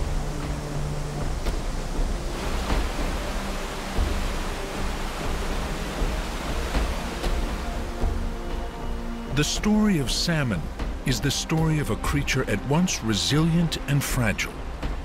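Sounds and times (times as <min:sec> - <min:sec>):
soft music of low notes: 0:00.0 - 0:15.0
waterfall rushing: 0:00.0 - 0:15.0.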